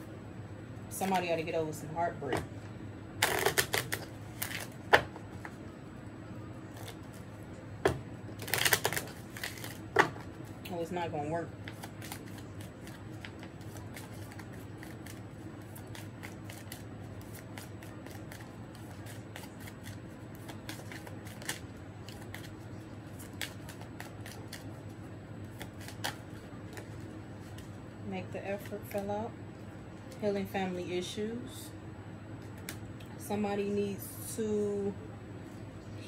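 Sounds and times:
low steady hum: 0:00.0 - 0:36.0
cards being shuffled: 0:03.2 - 0:05.6, 0:08.4 - 0:10.3, 0:11.6 - 0:24.8, 0:25.4 - 0:27.8
cards snapping: 0:25.5 - 0:26.8.

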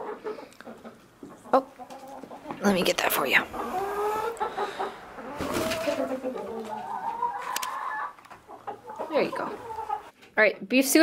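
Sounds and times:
chickens clucking: 0:00.0 - 0:10.2.

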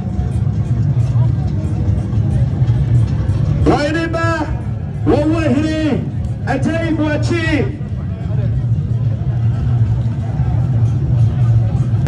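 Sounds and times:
faint scattered voices: 0:00.0 - 0:04.0, 0:04.6 - 0:12.0
crowd noise: 0:00.0 - 0:12.0
heavy low rumble: 0:00.0 - 0:12.0.

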